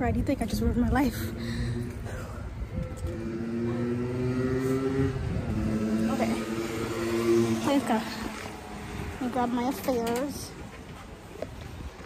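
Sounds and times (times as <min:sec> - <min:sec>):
road rumble: 0:00.0 - 0:12.0
wind: 0:00.0 - 0:12.0.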